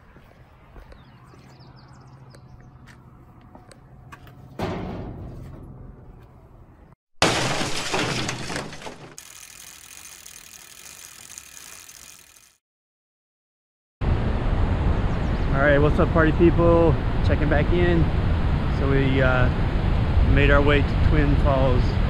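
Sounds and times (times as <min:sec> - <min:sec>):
low hum: 0:00.0 - 0:07.0
glass-like crash: 0:07.2 - 0:09.2.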